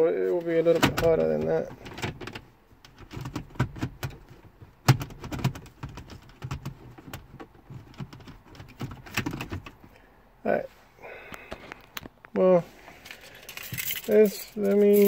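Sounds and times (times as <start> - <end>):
plastic trim clicking and rattling: 0.8 - 9.8.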